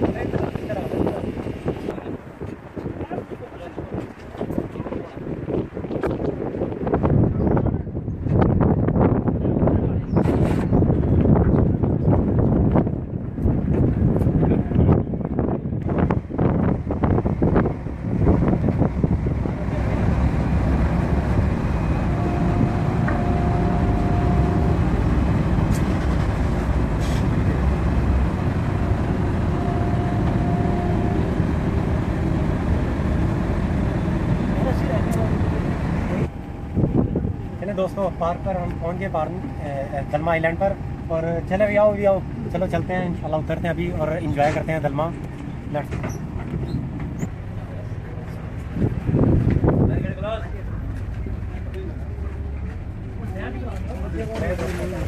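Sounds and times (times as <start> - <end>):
ferry engines rumbling: 0.0 - 55.0
wind buffeting microphone: 0.0 - 55.0.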